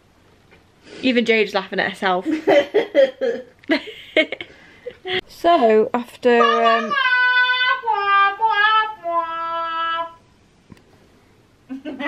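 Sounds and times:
woman singing unaccompanied: 0:05.6 - 0:10.2.

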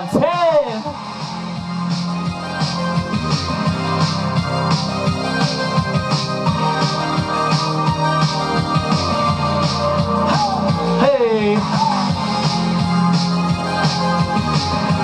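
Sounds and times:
keyboard chords: 0:00.0 - 0:15.0
upbeat pop music: 0:00.0 - 0:15.0.

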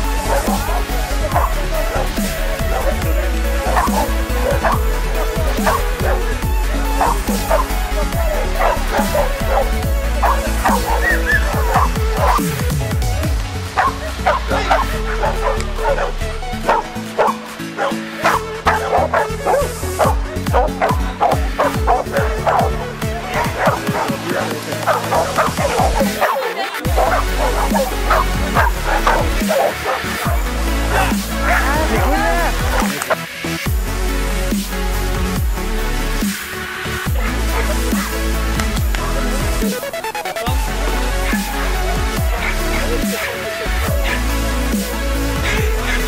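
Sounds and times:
background music: 0:00.0 - 0:46.0
dog barking: 0:00.2 - 0:12.7, 0:13.8 - 0:33.4, 0:37.2 - 0:38.6, 0:41.2 - 0:46.0.

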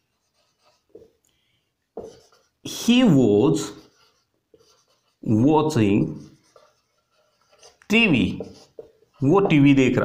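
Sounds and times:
marker scratching on whiteboard: 0:00.0 - 0:01.2, 0:02.0 - 0:10.0.

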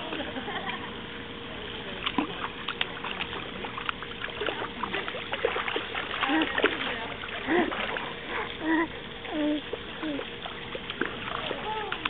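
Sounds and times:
feet splashing in water: 0:02.0 - 0:08.6, 0:09.6 - 0:12.0.

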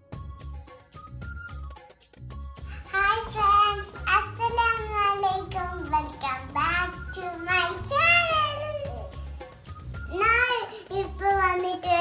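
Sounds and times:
background music with low beat: 0:00.0 - 0:12.0
girl singing: 0:02.7 - 0:09.2, 0:10.1 - 0:12.0.

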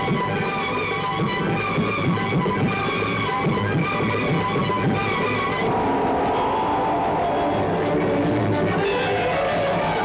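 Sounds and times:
film soundtrack music: 0:00.0 - 0:10.0.

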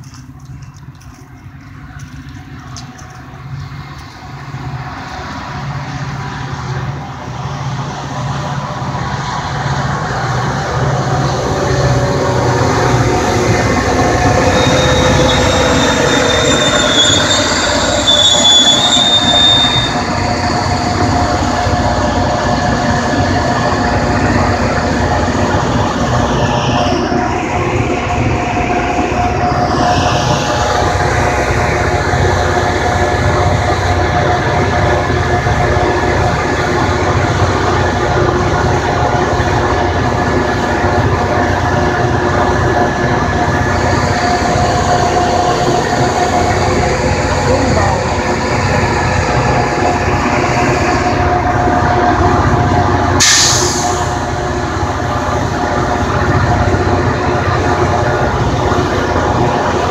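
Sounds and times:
train passing with wheel clatter: 0:00.0 - 0:59.9
high wheel squeals: 0:11.9 - 0:22.8.

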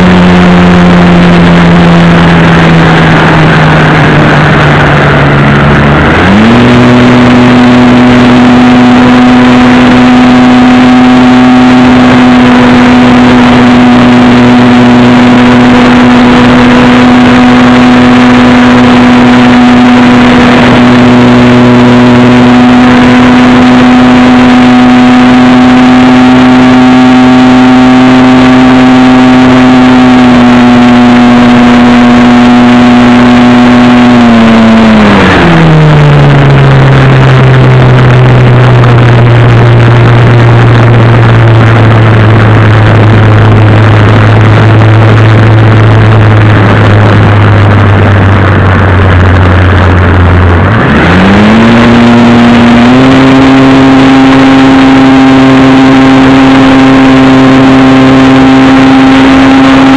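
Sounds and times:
model airplane motor and propeller: 0:06.5 - 0:59.9.

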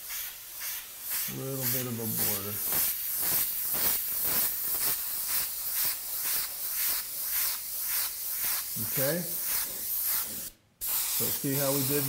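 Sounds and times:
airbrush hissing in pulses: 0:00.0 - 0:12.0.

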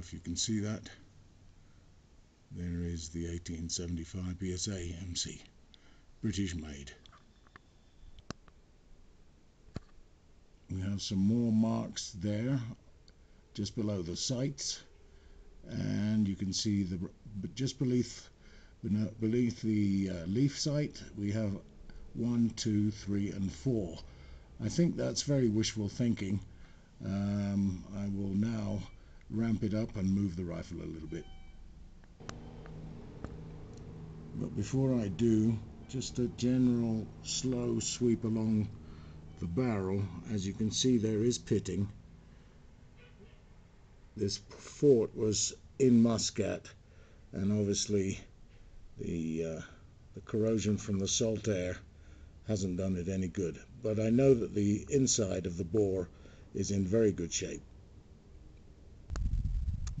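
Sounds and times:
low steady hum: 0:00.0 - 1:00.0
low rumbling noise: 0:32.2 - 0:42.1.

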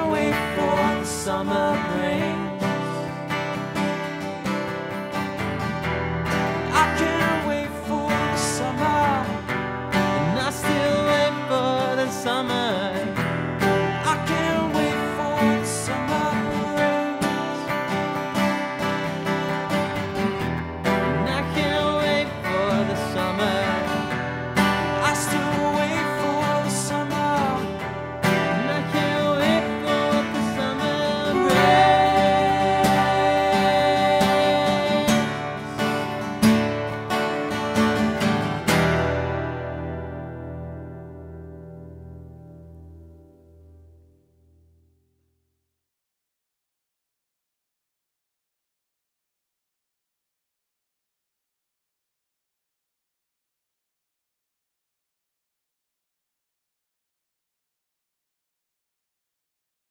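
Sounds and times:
acoustic guitars strumming: 0:00.0 - 0:44.0.

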